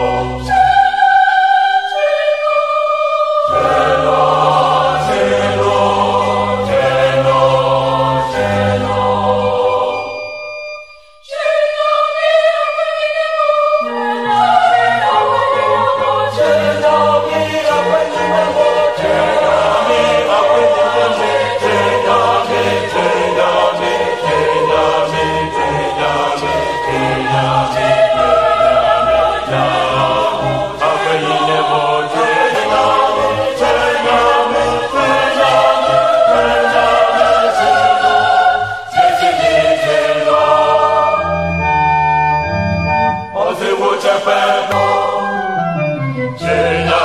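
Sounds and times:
choir singing: 0:00.0 - 0:10.4, 0:11.2 - 0:47.0
low instrumental accompaniment: 0:13.8 - 0:43.4.

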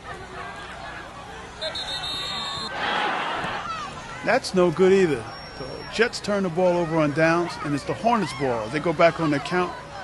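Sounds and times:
crowd noise: 0:00.0 - 0:10.0
referee's whistle: 0:01.6 - 0:02.8, 0:05.2 - 0:06.0.

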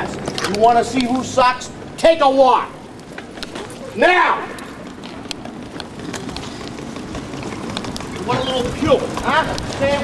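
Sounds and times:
footsteps: 0:02.9 - 0:10.0.

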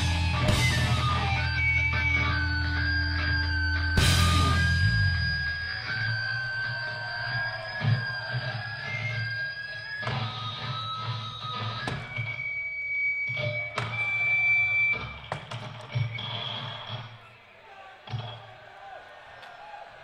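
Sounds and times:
electric guitars ringing out: 0:00.0 - 0:15.2.

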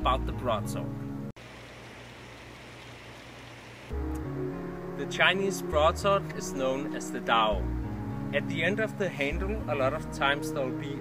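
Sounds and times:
background music: 0:00.0 - 0:01.3, 0:03.9 - 0:11.0
steady hiss: 0:01.4 - 0:04.0.

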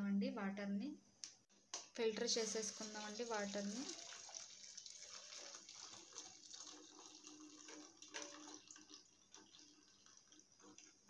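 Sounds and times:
liquid trickling through strainer: 0:02.4 - 0:11.0.

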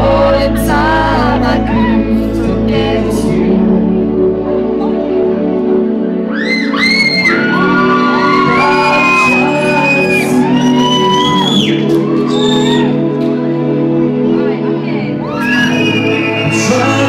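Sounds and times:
man singing lead vocal: 0:00.0 - 0:04.2, 0:07.3 - 0:13.5, 0:15.4 - 0:17.0
person whooping: 0:06.3 - 0:13.0, 0:15.2 - 0:16.9.

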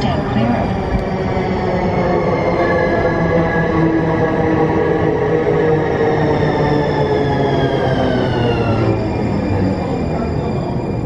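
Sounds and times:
light rail vehicle running hum: 0:00.0 - 0:11.0
train rolling noise: 0:00.0 - 0:11.0
whining tones: 0:00.0 - 0:11.0.

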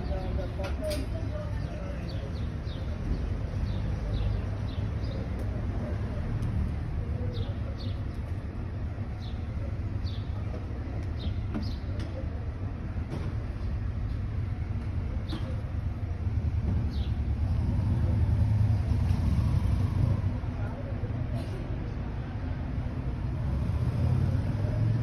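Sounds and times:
low street rumble: 0:00.0 - 0:25.0.

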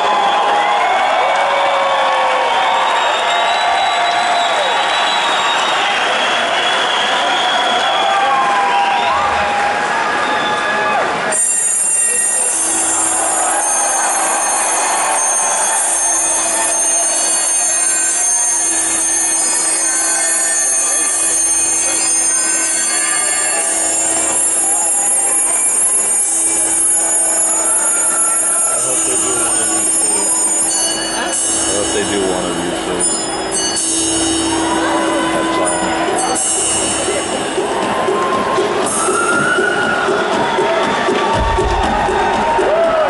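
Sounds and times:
crowd cheering and whistling: 0:00.0 - 0:43.0
high tones over low drone: 0:28.8 - 0:39.9.

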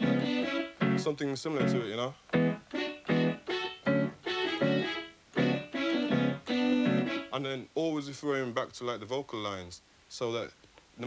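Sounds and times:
electronic keyboard melody: 0:00.0 - 0:07.4.

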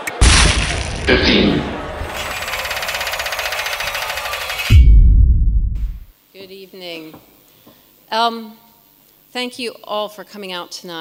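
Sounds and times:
rapid mechanical rattle: 0:02.0 - 0:04.8.

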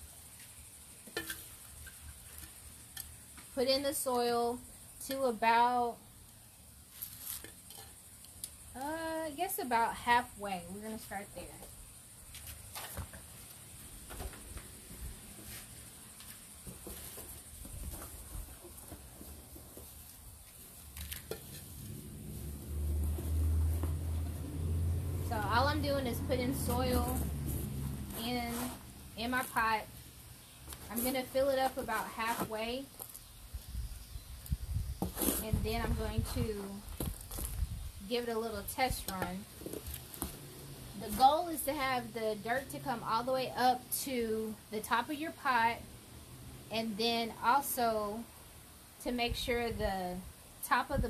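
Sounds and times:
woman's voice: 0:03.6 - 0:06.0, 0:08.8 - 0:11.7, 0:25.3 - 0:27.4, 0:28.1 - 0:29.9, 0:30.9 - 0:32.9, 0:35.4 - 0:36.9, 0:38.0 - 0:39.5, 0:41.0 - 0:45.8, 0:46.7 - 0:48.3, 0:49.0 - 0:51.0
scoop scraping soil in plastic bucket: 0:06.9 - 0:08.0, 0:26.5 - 0:29.8, 0:30.7 - 0:33.2, 0:35.0 - 0:36.1.

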